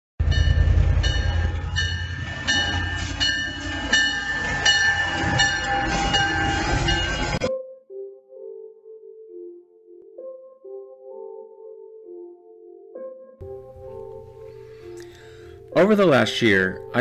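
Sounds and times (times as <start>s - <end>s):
diesel locomotive engine rumbling: 0.2s - 7.5s
locomotive bell ringing: 0.2s - 7.5s.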